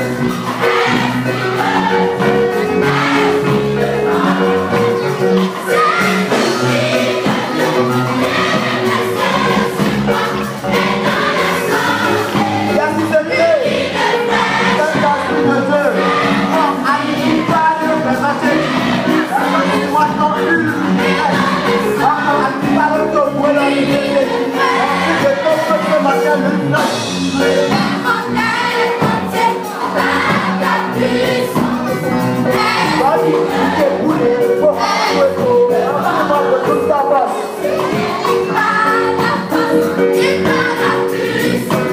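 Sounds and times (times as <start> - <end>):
girls choir singing gospel: 0.0 - 41.9
rhythmic beat: 0.0 - 41.9.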